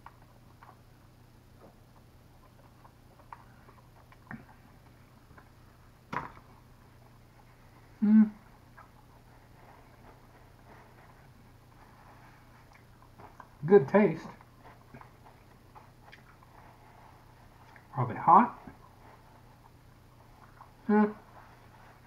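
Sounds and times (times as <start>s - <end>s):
man chewing with lip smacks: 0.0s - 22.0s.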